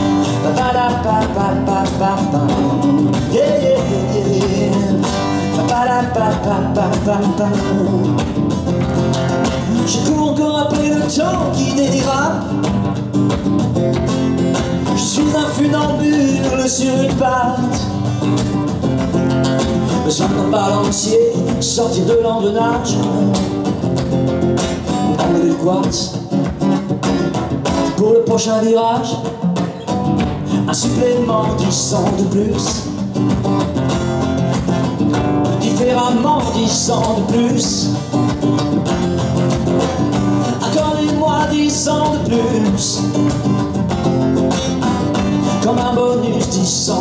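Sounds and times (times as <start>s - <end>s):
acoustic guitar strumming: 0.0s - 47.0s.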